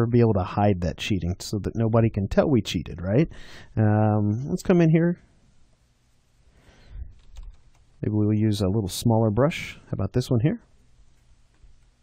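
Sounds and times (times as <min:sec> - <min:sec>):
low room noise: 0:00.0 - 0:12.0
faint computer clicks: 0:07.1 - 0:07.9.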